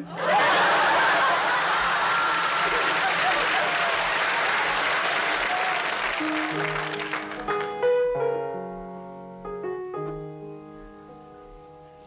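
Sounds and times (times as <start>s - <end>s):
audience applauding: 0.2s - 7.9s
piano notes: 5.8s - 12.0s.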